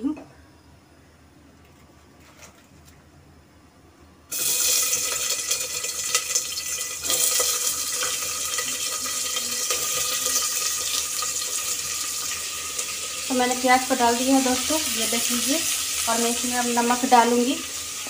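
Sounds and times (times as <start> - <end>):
onions sizzling in hot oil: 4.3 - 18.0.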